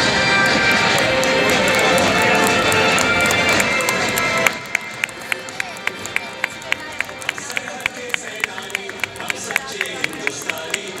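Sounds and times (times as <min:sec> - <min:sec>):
music: 0:00.0 - 0:11.0
voice: 0:05.2 - 0:11.0.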